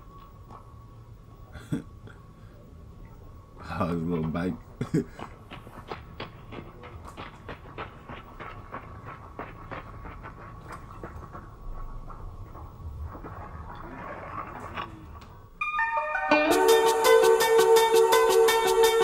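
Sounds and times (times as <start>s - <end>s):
faint steady hum: 0.0s - 18.9s.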